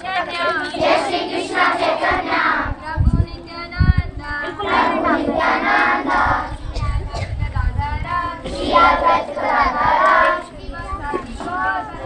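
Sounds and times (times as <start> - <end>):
girls singing in unison: 0.0 - 12.0.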